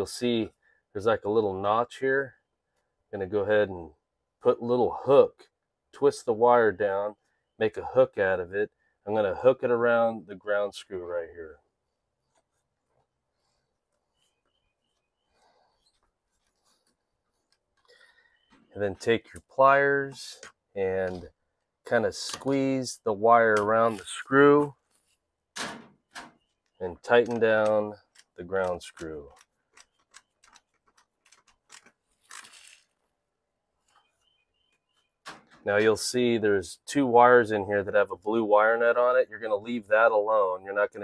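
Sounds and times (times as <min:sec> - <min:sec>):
faint rustle: 0:11.8 - 0:18.8.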